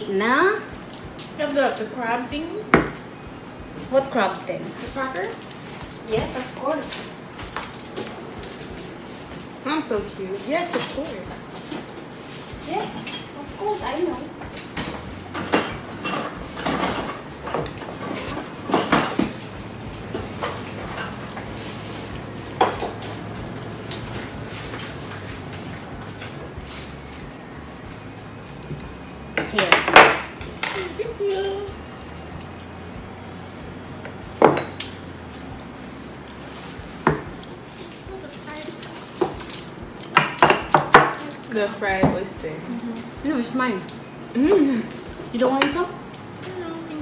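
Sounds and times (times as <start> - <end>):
dishes and utensils clinking: 10.6 - 26.6, 28.7 - 31.5.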